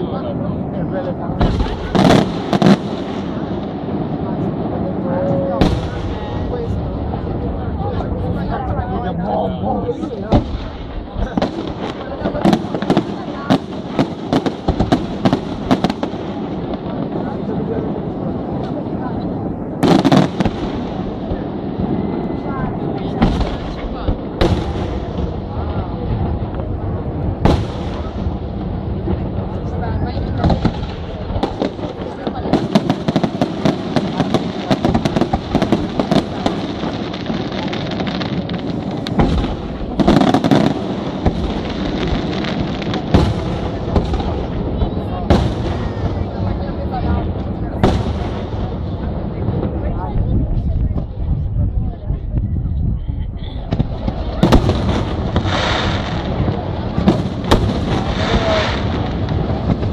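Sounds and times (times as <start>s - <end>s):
firework crackling: 0.0s - 59.9s
heavy firework booms: 0.0s - 59.9s.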